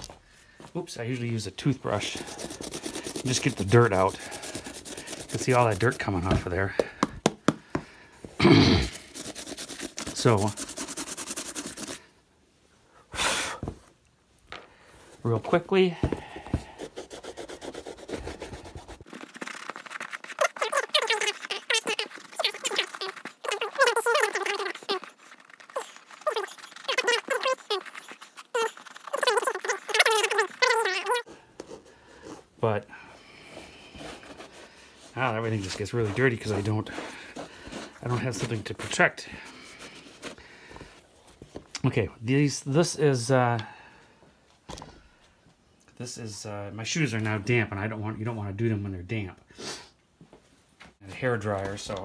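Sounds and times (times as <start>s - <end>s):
toothbrush scrubbing leather shoe: 1.8s - 6.5s, 8.5s - 12.0s, 16.6s - 32.5s, 33.3s - 40.4s.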